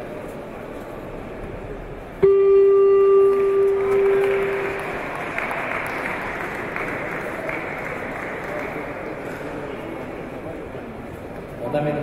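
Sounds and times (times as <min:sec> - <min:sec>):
murmur of hall noise: 0:00.0 - 0:12.0
scoreboard horn buzzing: 0:02.2 - 0:04.9.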